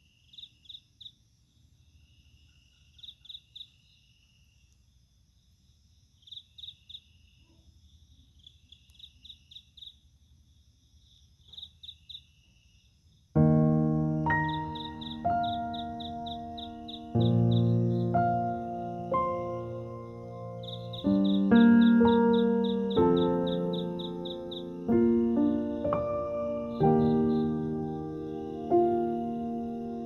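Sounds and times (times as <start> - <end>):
crickets chirping: 0.0 - 30.0
low rumble of night ambience: 0.0 - 30.0
music with piano-like chord: 13.4 - 30.0.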